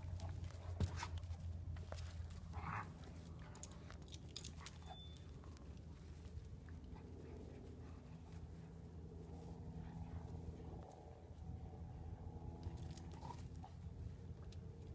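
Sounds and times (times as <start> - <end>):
dogs playfighting: 0.0 - 14.9
steady low hum: 0.0 - 14.9.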